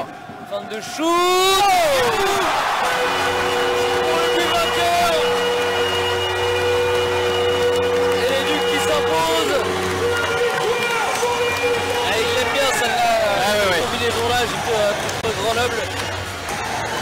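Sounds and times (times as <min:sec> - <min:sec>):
crowd noise: 0:00.0 - 0:17.0
people shouting: 0:00.9 - 0:15.1
goal horn multi-tone chord: 0:02.4 - 0:14.4.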